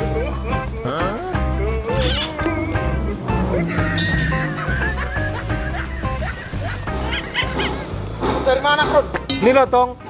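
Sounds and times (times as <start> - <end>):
background music with pulsing bass: 0.0 - 10.0.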